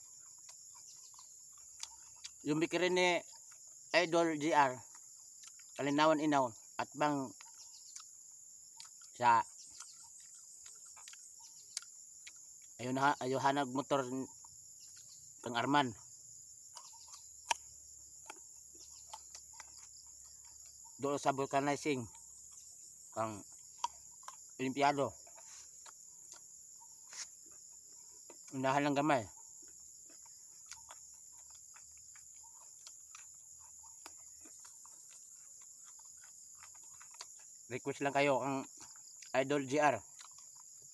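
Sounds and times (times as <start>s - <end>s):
crickets chirping: 0.0s - 40.9s
high-pitched insect chorus: 0.0s - 40.9s.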